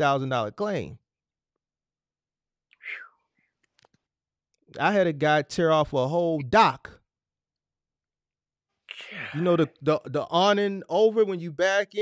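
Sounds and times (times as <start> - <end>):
person breathy whisper: 2.8 - 3.2, 8.9 - 9.4.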